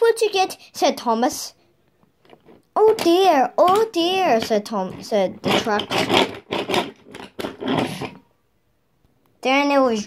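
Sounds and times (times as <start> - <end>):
wooden toy trains scraping on track: 4.2 - 8.3.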